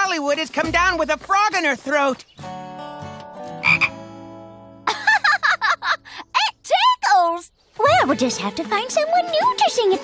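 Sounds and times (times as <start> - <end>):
cartoon frog croak: 3.6 - 3.9.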